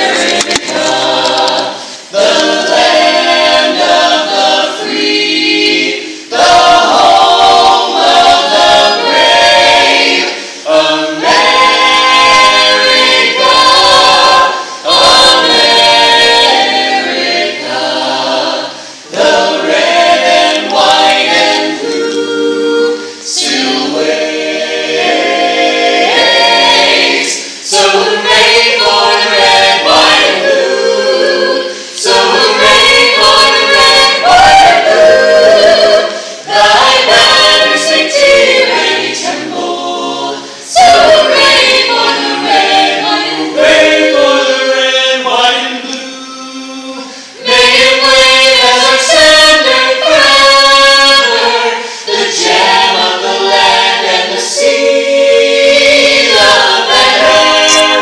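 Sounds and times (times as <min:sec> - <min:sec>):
vocal ensemble singing in harmony: 0:00.0 - 0:58.0.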